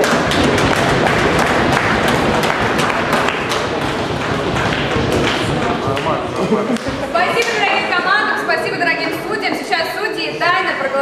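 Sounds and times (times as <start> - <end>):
audience applauding: 0.0 - 8.5.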